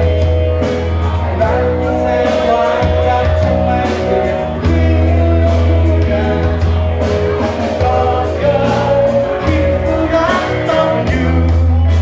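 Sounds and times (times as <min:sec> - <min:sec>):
live pop-rock band: 0:00.0 - 0:12.0
steady drum beat: 0:00.0 - 0:12.0
person singing: 0:00.9 - 0:12.0.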